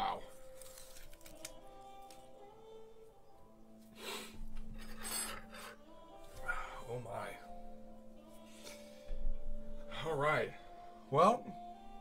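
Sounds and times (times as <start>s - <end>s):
person breathing hard: 3.9s - 6.9s, 8.4s - 9.3s.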